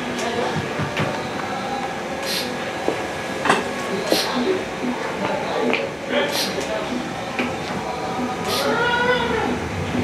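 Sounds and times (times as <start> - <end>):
drawn-out vocal call: 6.3 - 9.7.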